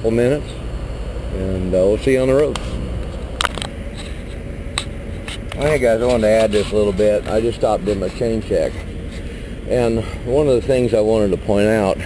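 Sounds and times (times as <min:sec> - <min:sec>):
low engine-like rumble: 0:00.0 - 0:12.0.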